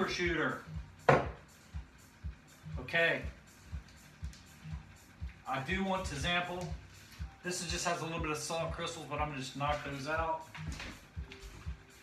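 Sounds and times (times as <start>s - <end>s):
background music with low beat: 0.0s - 12.0s
glass cup knocking on tabletop: 1.0s - 1.4s.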